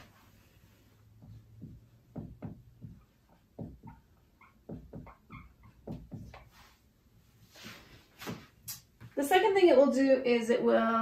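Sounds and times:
marker scratching on whiteboard: 1.1s - 6.9s
marker squeaks: 2.8s - 6.8s.

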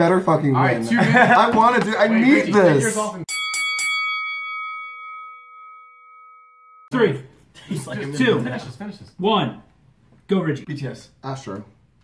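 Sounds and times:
bell-like chime ringing: 3.3s - 7.0s.

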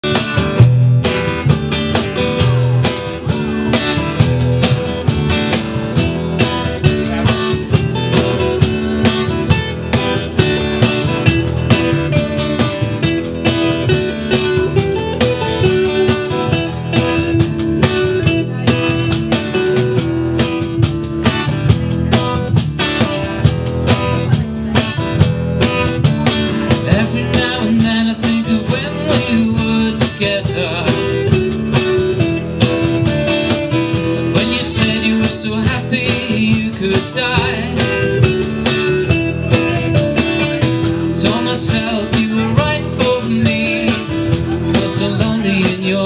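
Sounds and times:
acoustic guitar: 0.0s - 46.0s
cajon beat: 0.0s - 46.0s
electric guitar: 0.0s - 46.0s
upright double bass: 0.0s - 46.0s.

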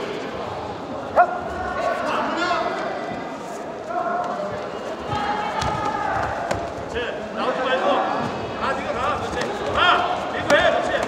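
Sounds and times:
murmur of sports hall crowd: 0.0s - 11.0s.

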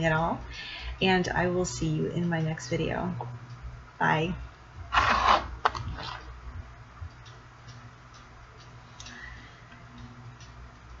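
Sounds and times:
faint regular ticking: 0.0s - 4.9s, 6.3s - 11.0s
low steady hum: 0.0s - 11.0s.

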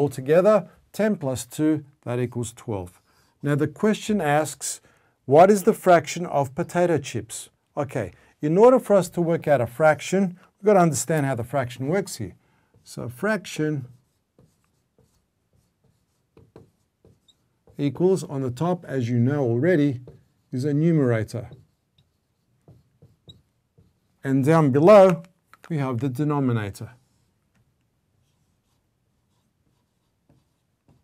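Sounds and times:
marker writing on whiteboard: 12.0s - 18.3s, 19.8s - 24.2s, 28.2s - 31.0s.

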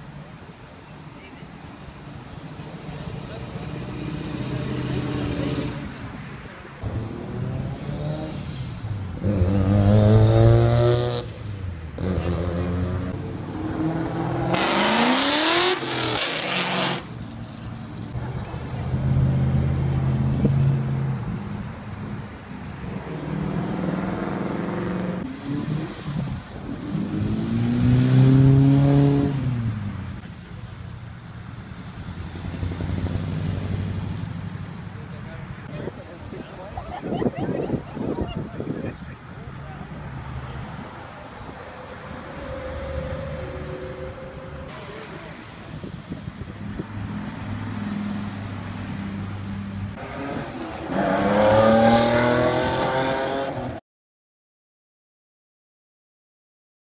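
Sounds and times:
cars accelerating past: 3.1s - 6.1s, 6.8s - 17.3s, 22.8s - 30.3s, 31.2s - 34.9s, 46.7s - 53.8s.

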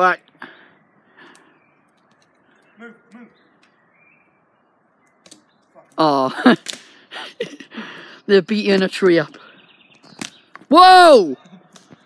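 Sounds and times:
short voice sounds: 2.8s - 3.4s.

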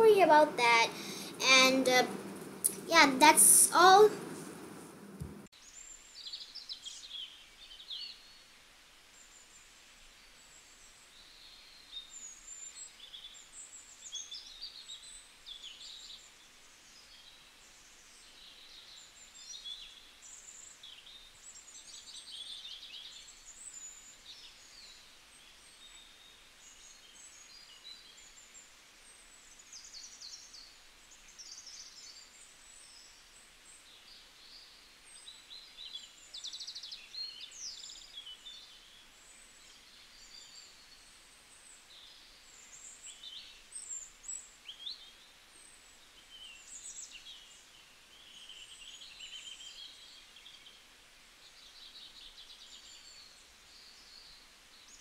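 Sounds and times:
small birds chirping: 0.0s - 8.3s, 18.1s - 55.0s
low hiss: 0.0s - 55.0s.

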